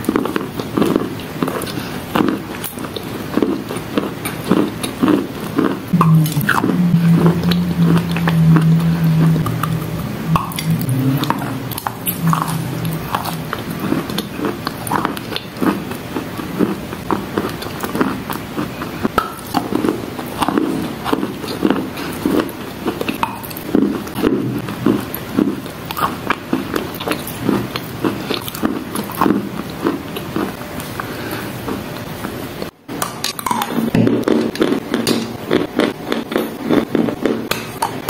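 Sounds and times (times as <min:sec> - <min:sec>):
chewing moist crunches: 0:00.0 - 0:38.0.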